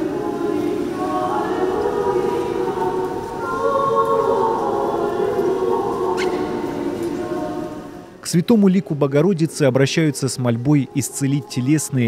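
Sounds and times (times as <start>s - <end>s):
church choir chanting: 0.0s - 12.0s.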